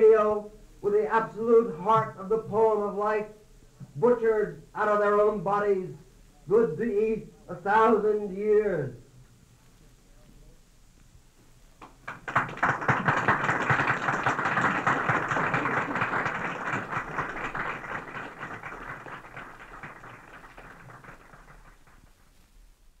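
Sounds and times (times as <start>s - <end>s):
audience applause: 11.8s - 22.3s.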